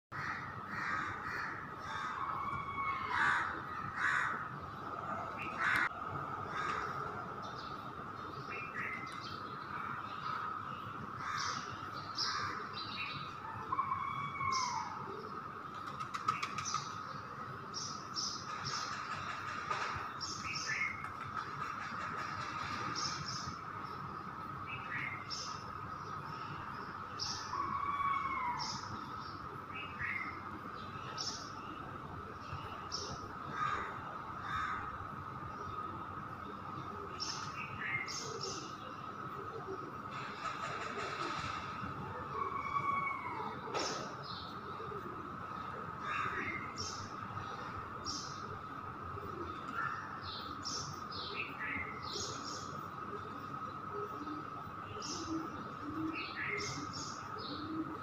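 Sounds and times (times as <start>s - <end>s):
birds chirping: 0.1s - 58.0s.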